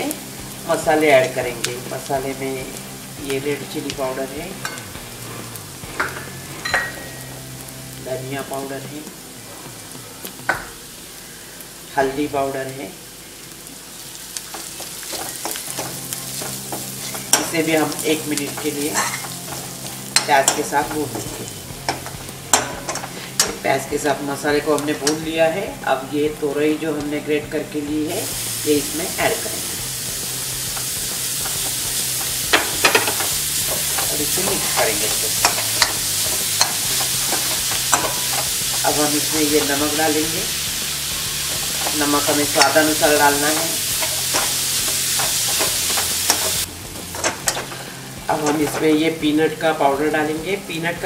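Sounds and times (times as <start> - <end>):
light sizzle of frying: 0.0 - 51.0
spatula scraping metal pan: 14.5 - 23.7, 29.6 - 49.0.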